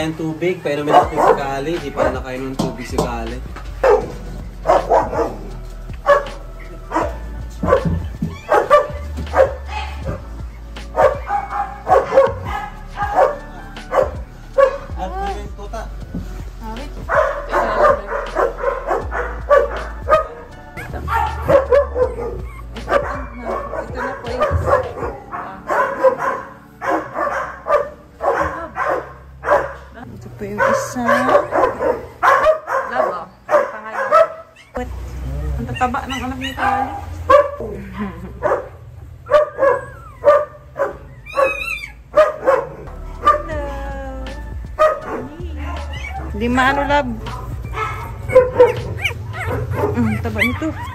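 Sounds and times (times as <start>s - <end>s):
song with sung vocal: 0.0s - 30.0s, 42.7s - 50.9s
steady bass line: 0.8s - 25.6s, 42.0s - 50.9s.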